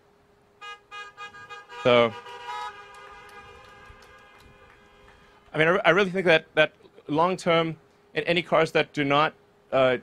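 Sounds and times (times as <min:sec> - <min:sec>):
car horns honking: 0:00.6 - 0:05.4.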